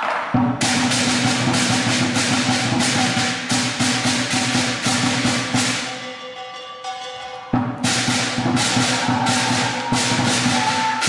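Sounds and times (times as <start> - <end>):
drum beating: 0.0 - 6.1, 7.5 - 11.0
clashing cymbals: 0.0 - 11.0.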